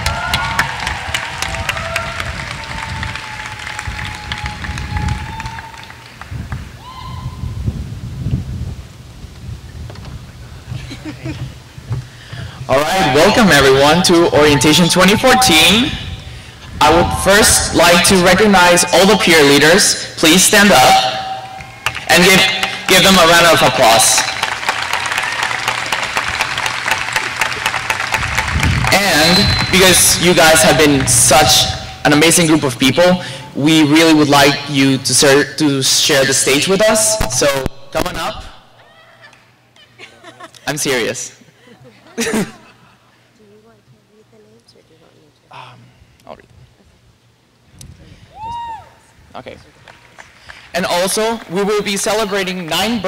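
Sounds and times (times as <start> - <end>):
audience clapping and cheering: 0.0 - 7.0, 21.4 - 31.9, 49.4 - 53.0
drawn-out whoops: 6.8 - 7.6, 48.3 - 49.1.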